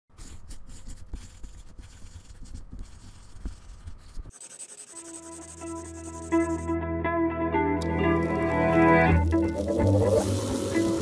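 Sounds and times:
pencil scratching on paper: 0.1 - 6.7
music with held chord: 6.6 - 9.2
steady high hiss: 7.8 - 11.0.

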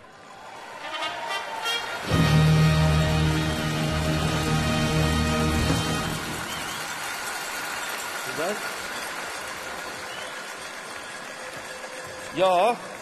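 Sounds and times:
audience applauding: 0.0 - 13.0.

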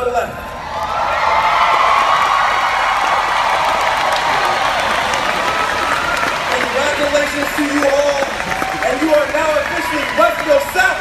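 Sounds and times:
crowd cheering and applauding: 0.6 - 11.0
shouts and whoops: 0.6 - 11.0.

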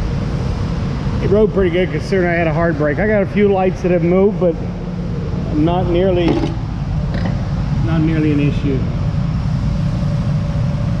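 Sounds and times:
faint constant hum: 0.0 - 11.0
steady low rumble: 0.0 - 11.0.

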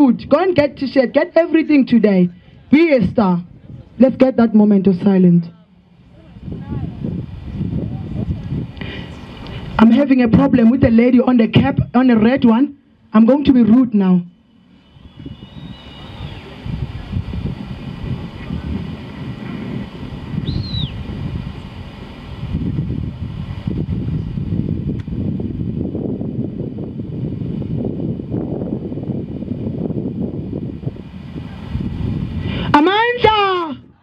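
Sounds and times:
wind buffeting microphone: 0.0 - 5.2, 5.9 - 12.6, 14.5 - 34.0
faint high chirp: 14.8 - 16.5.

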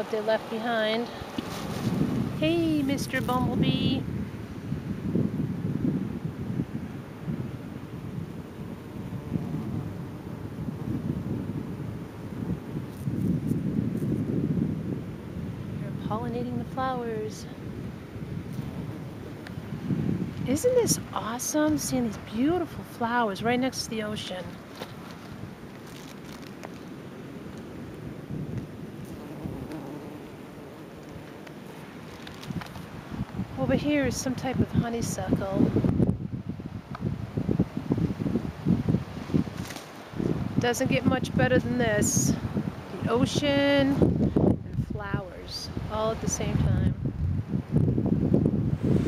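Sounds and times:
ocean surf rushing: 0.0 - 12.8
wind buffeting microphone: 0.0 - 49.0.

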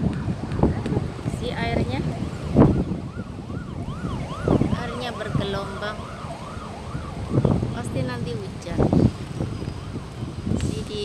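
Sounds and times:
wind rumble on microphone: 0.0 - 11.0
emergency vehicle siren: 2.0 - 10.9.

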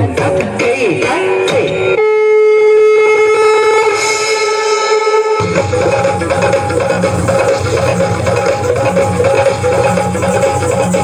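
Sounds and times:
wind instrument long held note: 2.0 - 6.8.

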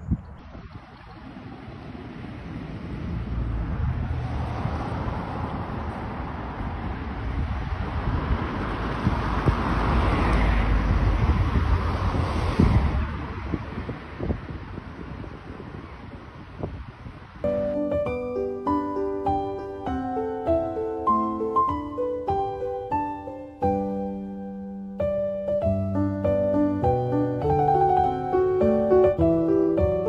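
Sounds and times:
wind buffeting microphone: 0.0 - 19.7.

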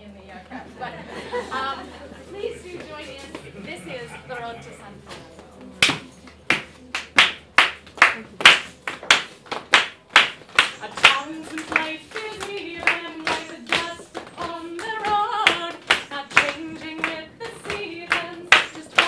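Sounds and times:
hand claps steady beat: 5.8 - 19.0
woman singing: 10.8 - 19.0.

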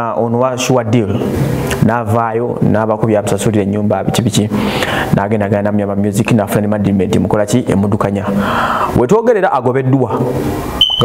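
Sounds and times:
man speaking: 0.0 - 10.4
high-pitched electronic beep: 10.8 - 11.0.

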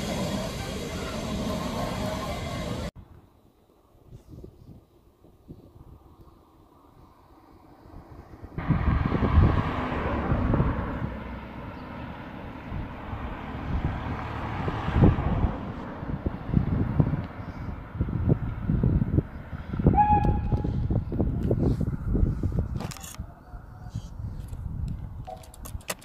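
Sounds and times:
wind buffeting microphone: 4.0 - 11.5, 12.4 - 26.0.

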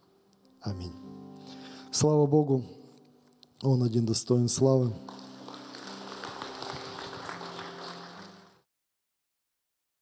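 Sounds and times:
congregation clapping: 4.7 - 8.7.

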